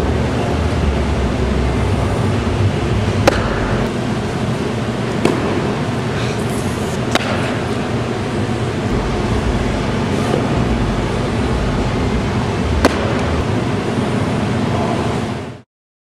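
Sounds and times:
ventilation hum: 0:00.0 - 0:15.6
balls knocking catcher's gear: 0:03.2 - 0:03.8, 0:05.2 - 0:05.7, 0:12.8 - 0:13.4.

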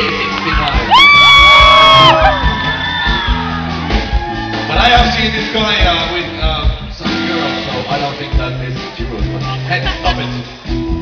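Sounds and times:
band sustained backing chords: 0:00.0 - 0:11.0
high-pitched scream: 0:00.9 - 0:03.7.

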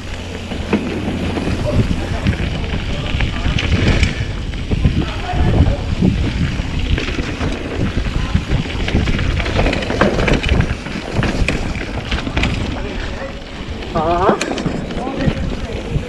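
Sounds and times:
bike rattling over rough ground: 0:00.0 - 0:16.0
bike tyre noise on dirt: 0:00.0 - 0:16.0
wind buffeting microphone: 0:00.0 - 0:16.0.

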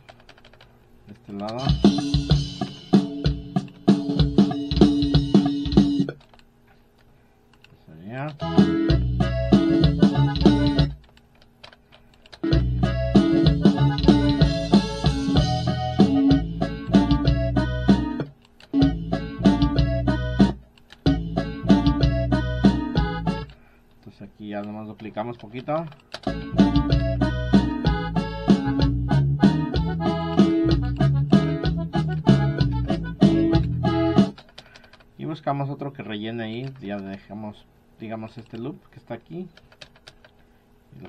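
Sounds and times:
accordion folk song with drum loops: 0:01.5 - 0:06.2, 0:08.3 - 0:11.0, 0:12.4 - 0:23.6, 0:26.2 - 0:34.4.

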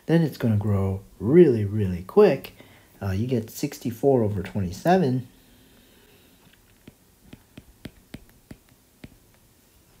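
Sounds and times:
stylus tapping on a screen: 0:06.6 - 0:09.4.

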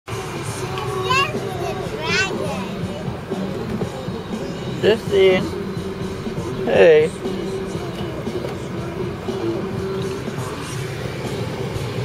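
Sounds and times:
children chattering: 0:00.1 - 0:10.7
car cabin hum: 0:00.3 - 0:12.0.

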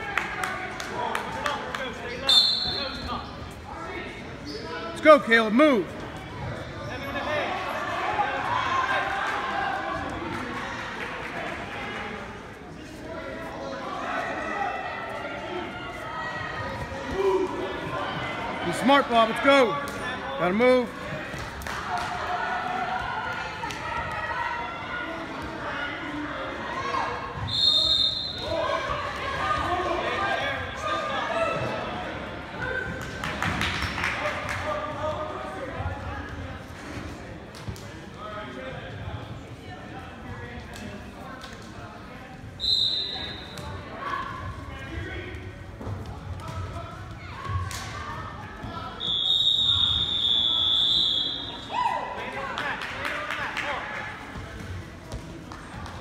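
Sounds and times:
crowd chatter and shouting: 0:00.0 - 0:56.0
shrill whistle blasts: 0:02.3 - 0:03.2, 0:27.5 - 0:28.5, 0:42.6 - 0:43.6, 0:49.0 - 0:51.7.

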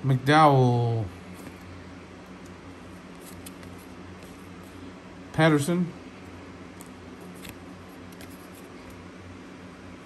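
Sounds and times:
low room hum: 0:00.0 - 0:10.0
trading cards shuffling: 0:02.3 - 0:04.8, 0:06.7 - 0:09.0.

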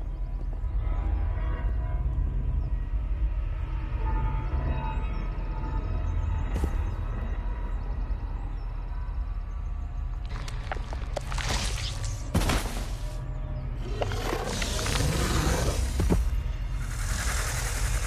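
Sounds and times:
horror film score drone: 0:00.0 - 0:18.0.

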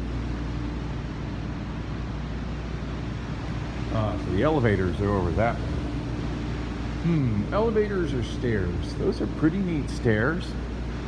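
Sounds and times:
low hum and rushing noise: 0:00.0 - 0:11.0.

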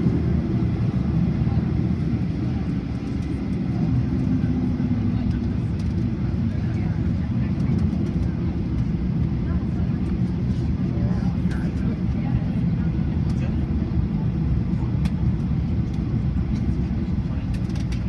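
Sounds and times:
jet engine cabin rumble: 0:00.0 - 0:18.0.

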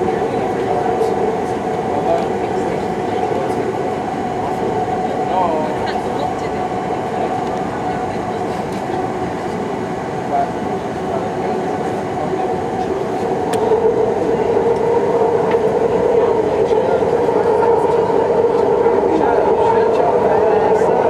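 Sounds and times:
train humming tone: 0:00.0 - 0:21.0
train wheels rumbling on rail: 0:00.0 - 0:21.0.

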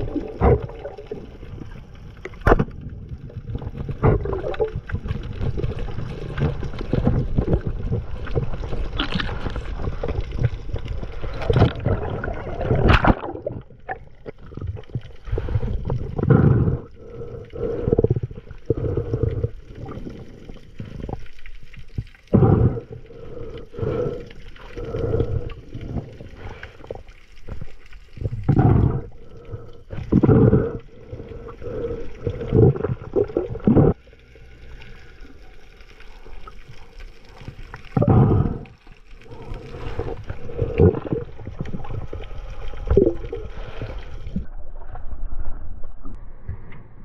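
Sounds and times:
gurgling underwater rush: 0:00.0 - 0:46.7.

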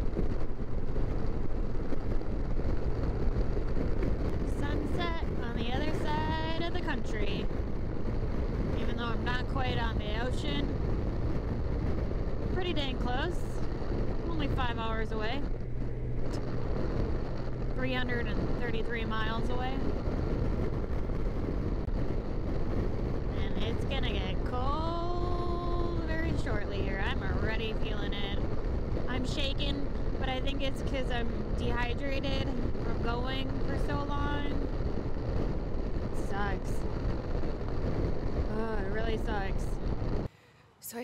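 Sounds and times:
motorcycle engine: 0:00.0 - 0:40.3
wind rushing over microphone: 0:00.0 - 0:40.6
road noise: 0:00.0 - 0:40.8.

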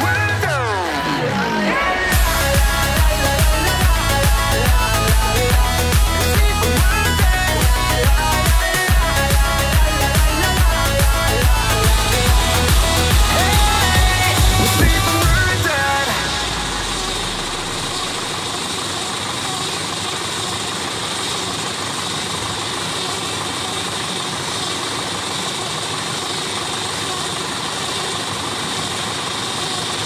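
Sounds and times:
tractor running: 0:00.0 - 0:30.0.

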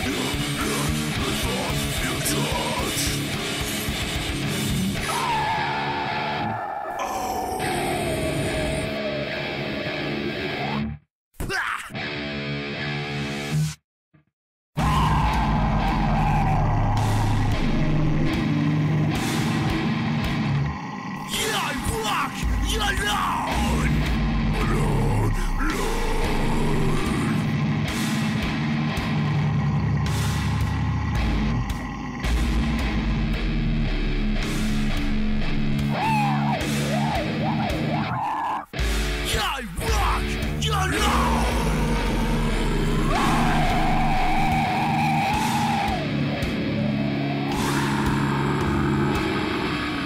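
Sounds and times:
drums: 0:00.0 - 0:05.6, 0:14.8 - 0:20.7, 0:21.3 - 0:50.0
distorted guitar riff: 0:00.0 - 0:11.0, 0:11.9 - 0:13.8, 0:14.8 - 0:50.0.

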